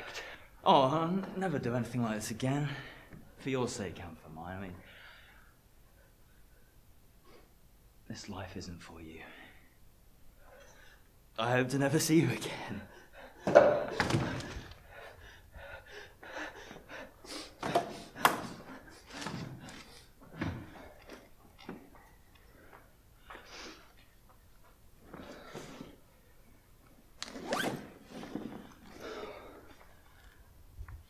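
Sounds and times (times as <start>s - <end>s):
man breathing: 4.8s - 7.5s, 14.2s - 21.0s
zip on fabric bag pulled: 27.2s - 28.9s.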